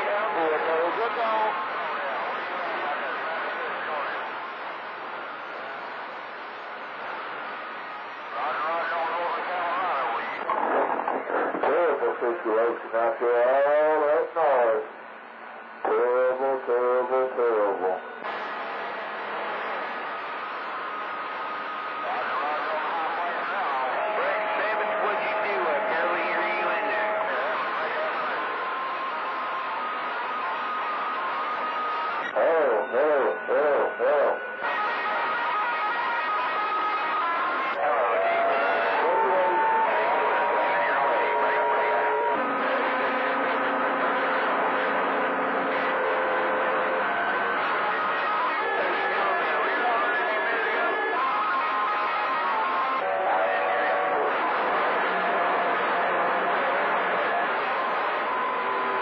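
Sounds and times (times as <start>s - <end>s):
radio static hiss: 0.0s - 59.0s
warbling radio voices: 21.7s - 30.6s, 31.2s - 43.6s.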